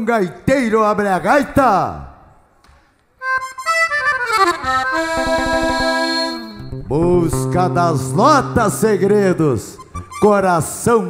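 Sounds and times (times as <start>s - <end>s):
accordion: 3.2s - 10.8s.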